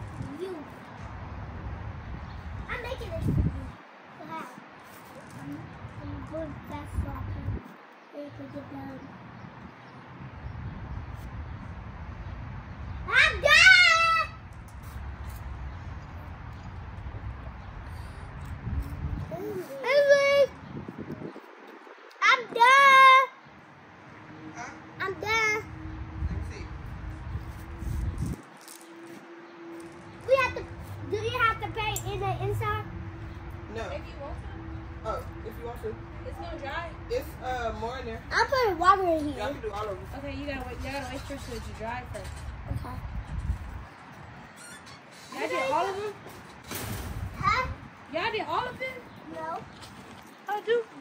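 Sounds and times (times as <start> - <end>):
children talking: 0.0 - 1.1, 1.8 - 11.2, 12.7 - 15.4, 17.2 - 28.3, 29.8 - 46.5, 47.1 - 51.0
wind rumble on microphone: 0.0 - 3.8, 4.4 - 7.8, 9.0 - 13.1, 14.5 - 22.7, 25.6 - 29.2, 29.9 - 44.7.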